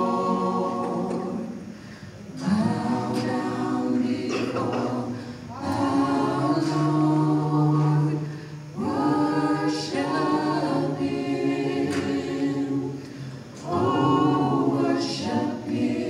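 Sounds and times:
choir singing a cappella: 0:00.0 - 0:16.0.

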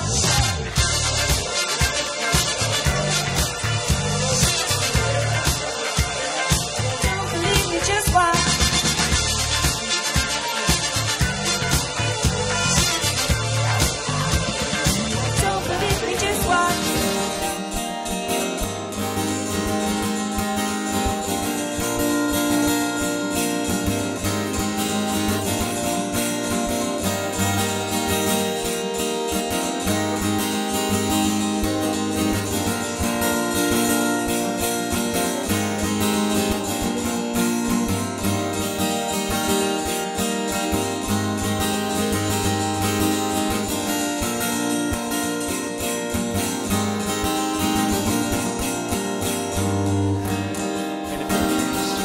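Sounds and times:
acoustic guitar strumming chords: 0:00.0 - 0:52.0.

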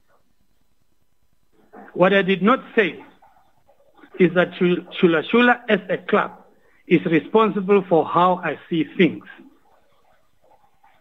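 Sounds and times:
man speaking: 0:01.8 - 0:03.2, 0:04.0 - 0:09.5.

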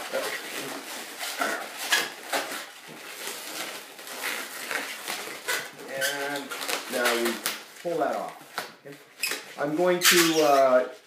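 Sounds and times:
balloons squeaking and rubbing: 0:00.0 - 0:11.0.

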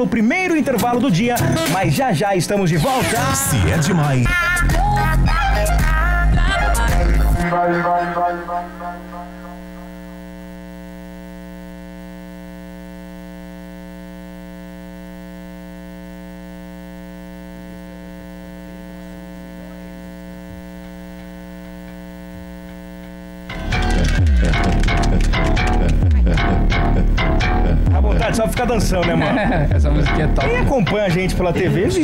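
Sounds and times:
dance music with heavy bass: 0:02.8 - 0:10.2, 0:23.5 - 0:32.0
electrical mains hum: 0:06.2 - 0:32.0.

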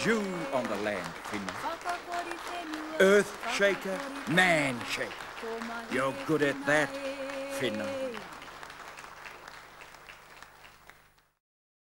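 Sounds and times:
audience applause: 0:00.0 - 0:11.4.

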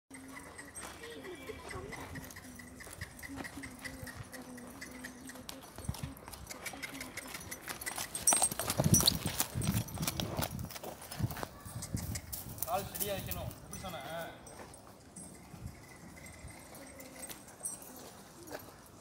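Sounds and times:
horse hooves clip-clopping: 0:00.1 - 0:19.0.

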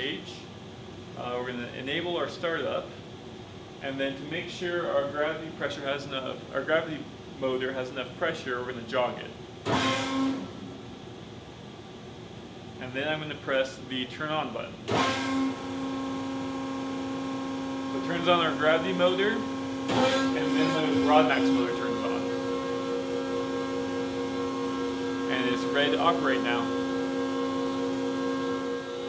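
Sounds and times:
hydraulic pump motor humming: 0:09.6 - 0:10.9, 0:14.9 - 0:29.0.

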